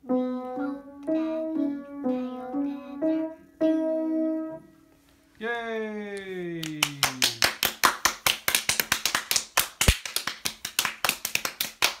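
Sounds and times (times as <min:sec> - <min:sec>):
person cheering yay: 0:05.4 - 0:07.6
hand clapping: 0:06.1 - 0:12.0.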